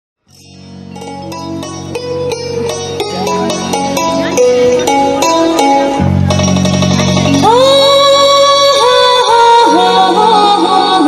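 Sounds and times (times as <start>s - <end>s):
folk song over loudspeaker: 0.9s - 11.0s
high singing voice: 7.2s - 11.0s.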